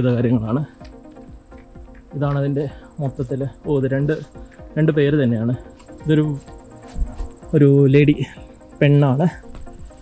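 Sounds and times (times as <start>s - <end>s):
crickets trilling: 0.0s - 10.0s
person speaking: 2.0s - 6.6s.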